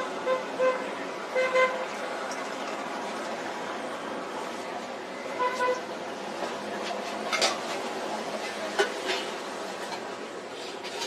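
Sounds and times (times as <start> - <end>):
vehicle horn toots: 0.0 - 1.8, 5.4 - 5.8.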